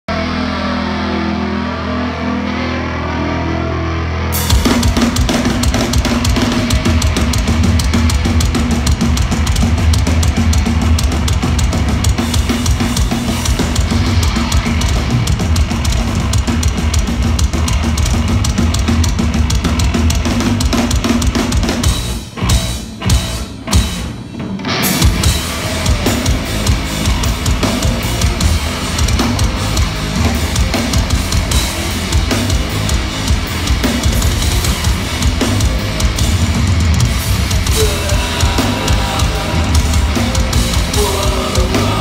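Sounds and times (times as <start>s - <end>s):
electric guitars sustained chord: 0.0s - 21.0s, 21.8s - 42.0s
metal band playing: 0.0s - 42.0s
pounding drum kit: 4.3s - 42.0s.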